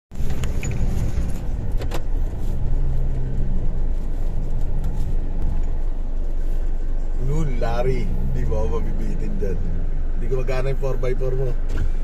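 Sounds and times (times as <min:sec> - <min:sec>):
vehicle engine running at low speed: 0:00.1 - 0:12.0.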